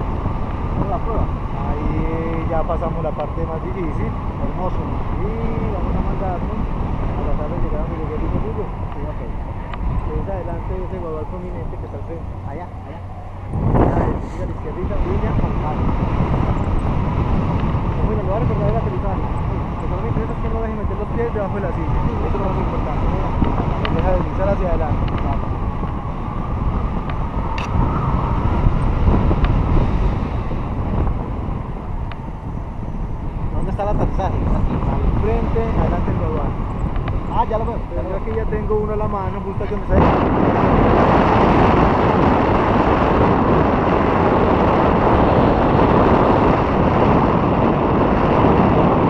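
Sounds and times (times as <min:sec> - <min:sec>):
wind rumbling on microphone: 0:00.0 - 0:49.0
muffled voices: 0:00.8 - 0:16.0.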